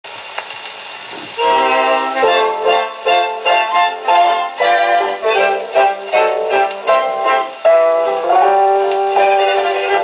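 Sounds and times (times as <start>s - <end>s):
record surface hiss: 0.0s - 10.0s
orchestra playing a loud chord: 1.4s - 10.0s.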